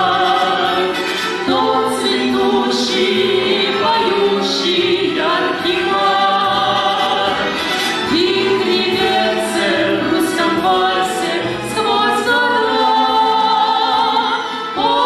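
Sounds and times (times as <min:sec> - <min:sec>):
musical accompaniment: 0:00.0 - 0:15.0
woman and man singing a waltz: 0:00.0 - 0:15.0.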